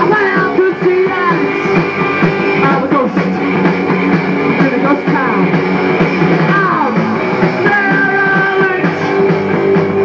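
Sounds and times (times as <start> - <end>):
punk rock band playing: 0.0 - 10.0
singer's voice: 0.0 - 10.0.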